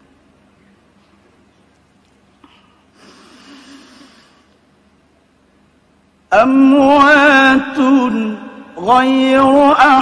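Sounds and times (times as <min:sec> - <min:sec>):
person breathing in near microphone: 0:02.4 - 0:04.6.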